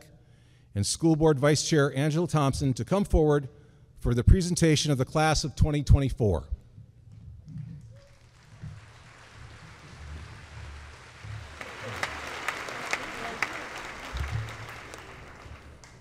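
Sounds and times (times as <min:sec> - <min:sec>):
audience applauding: 0:07.9 - 0:16.0.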